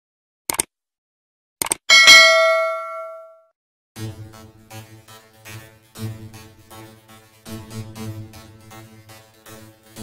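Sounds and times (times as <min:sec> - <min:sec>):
bright bell ding: 0:01.9 - 0:03.4.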